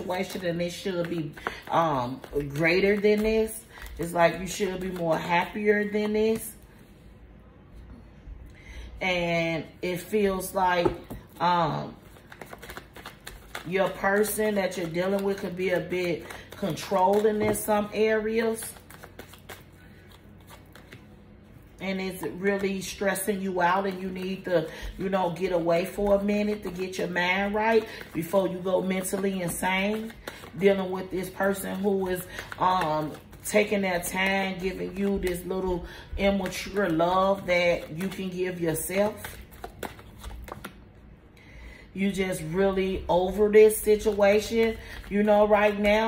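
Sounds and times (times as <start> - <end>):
cards being shuffled: 0.0 - 6.6, 10.0 - 21.2, 22.0 - 40.9, 42.1 - 46.0.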